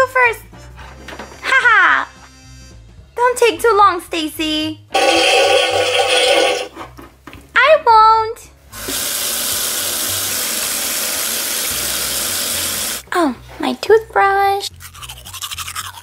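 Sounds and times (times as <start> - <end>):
tap running into sink: 8.8 - 9.3.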